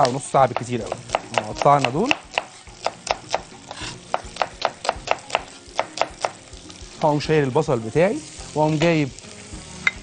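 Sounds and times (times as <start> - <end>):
knife chopping on wooden board: 0.0 - 6.4.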